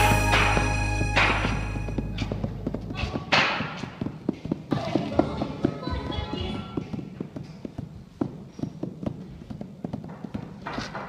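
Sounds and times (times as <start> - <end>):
background music: 0.0 - 2.9.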